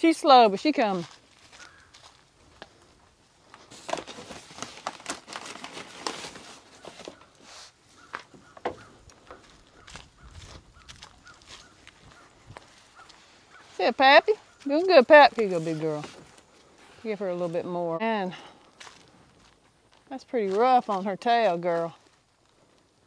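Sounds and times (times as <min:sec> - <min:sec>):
footsteps on dry leaves: 0:00.7 - 0:22.7.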